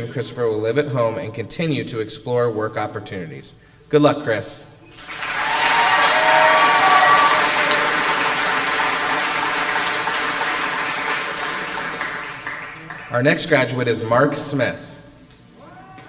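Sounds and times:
audience applauding: 4.9 - 13.4.

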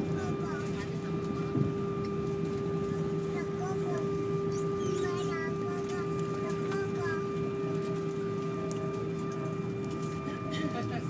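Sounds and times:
faint passenger voices: 0.0 - 11.0
jet engine cabin hum: 0.0 - 11.0.

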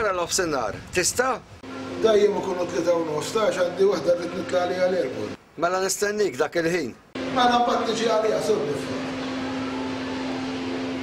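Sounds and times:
steady hum: 1.4 - 5.5, 7.0 - 11.0.

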